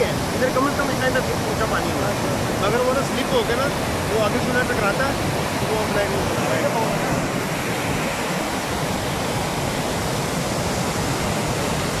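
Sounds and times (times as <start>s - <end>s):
floodwater rushing: 0.0s - 12.0s.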